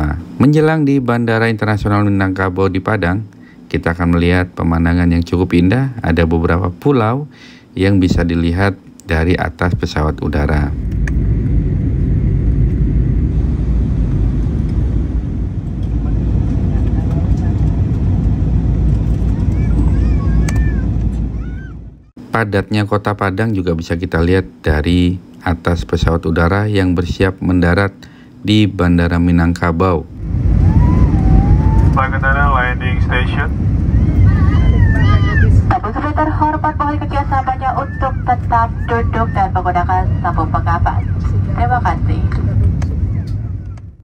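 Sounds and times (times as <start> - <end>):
jet engines rumbling: 0.0 - 22.3, 23.4 - 44.0
rushing air: 10.7 - 16.7, 30.1 - 35.8.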